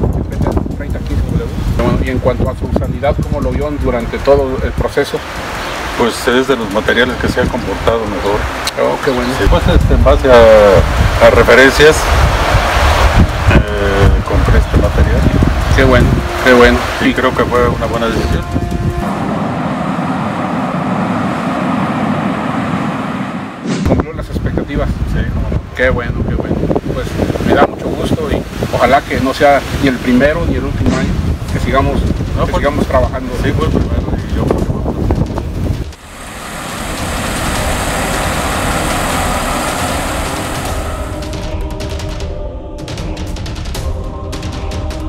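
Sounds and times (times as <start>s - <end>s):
combine harvester running: 18.6s - 23.8s, 35.9s - 41.5s.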